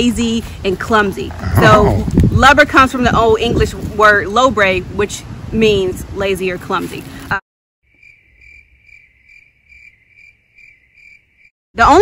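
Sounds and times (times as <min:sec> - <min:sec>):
cricket chirping: 0:07.9 - 0:11.5.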